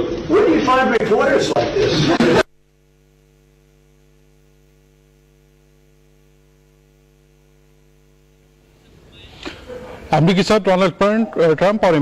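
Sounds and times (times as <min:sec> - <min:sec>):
faint electrical mains hum: 0:00.0 - 0:12.0.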